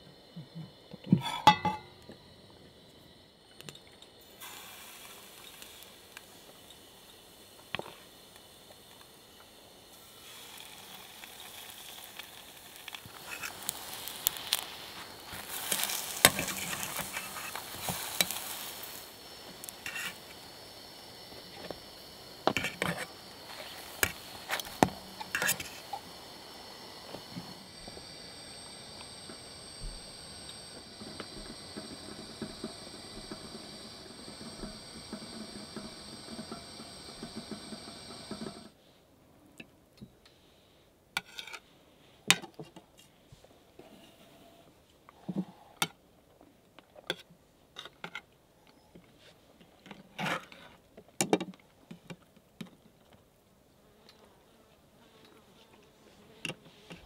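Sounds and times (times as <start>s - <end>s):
batter sizzling in oil: 3.0s - 38.8s.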